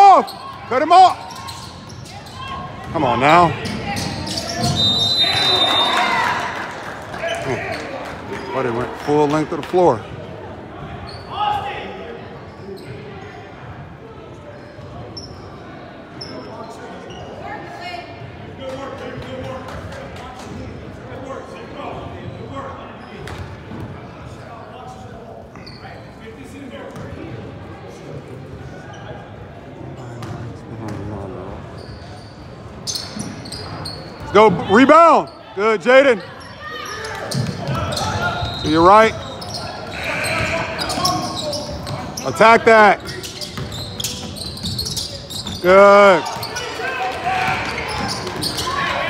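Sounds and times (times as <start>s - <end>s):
many voices talking in a hall: 0.0s - 49.0s.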